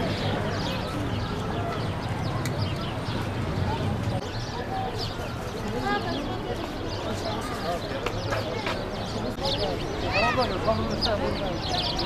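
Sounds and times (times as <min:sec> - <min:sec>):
faint distant voices: 0:00.0 - 0:12.0
small birds chirping: 0:00.0 - 0:12.0.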